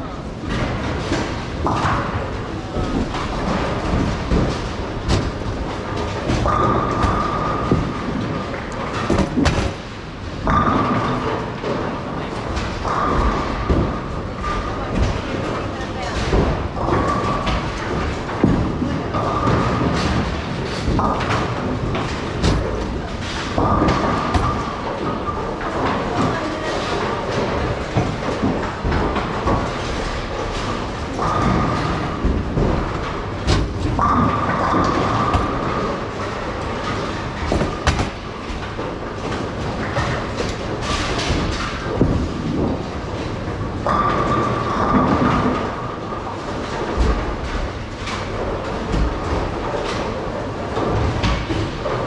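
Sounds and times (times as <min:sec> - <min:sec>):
bowling balls crashing into pins: 0:00.0 - 0:52.0
bowling balls rolling down lanes: 0:00.0 - 0:52.0.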